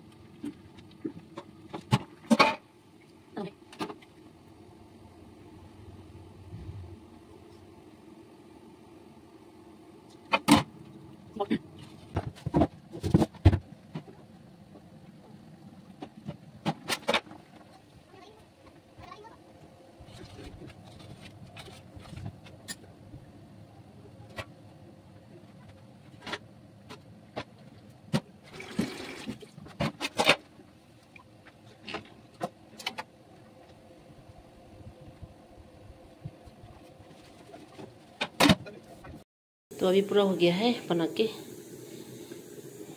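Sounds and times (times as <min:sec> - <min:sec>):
steam hissing: 0:39.8 - 0:42.9.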